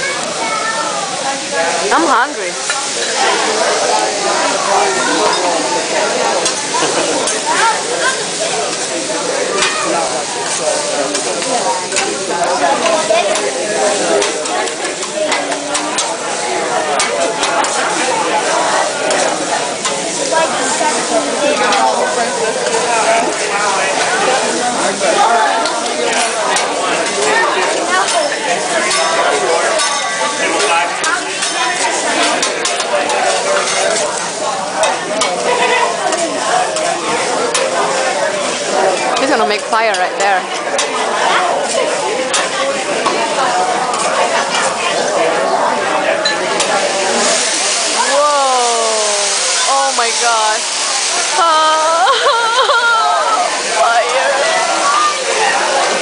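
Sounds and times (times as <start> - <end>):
rice sizzling on griddle: 0.0 - 56.0.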